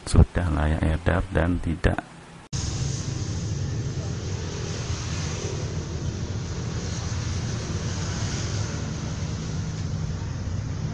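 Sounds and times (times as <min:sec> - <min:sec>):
low rumble and hiss: 0:00.0 - 0:10.9.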